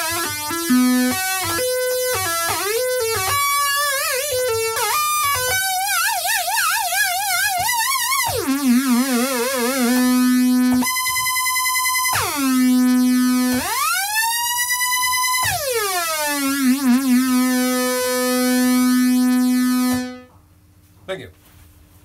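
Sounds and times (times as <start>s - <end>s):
synthesizer notes gliding: 0.0s - 20.3s.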